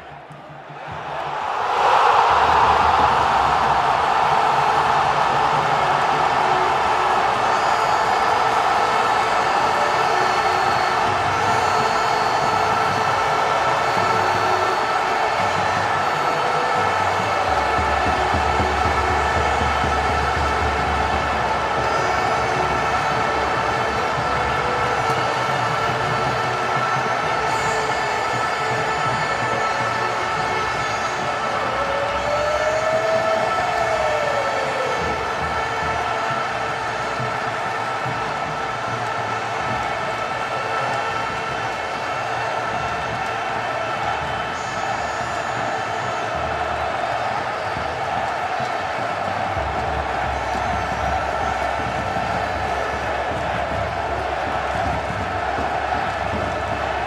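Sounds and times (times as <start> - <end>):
held horn-like tones: 0.0 - 57.0
rushing crowd-like noise: 0.0 - 57.0.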